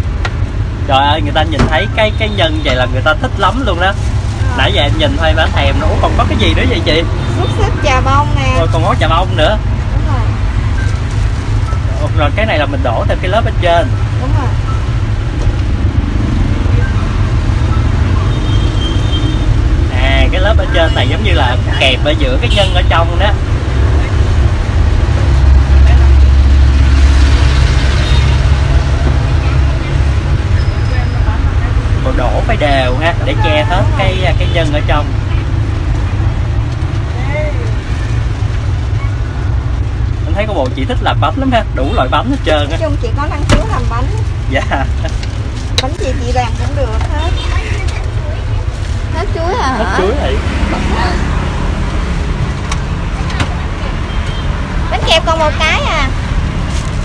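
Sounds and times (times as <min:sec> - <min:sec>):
road traffic rumble: 0:00.0 - 0:57.0.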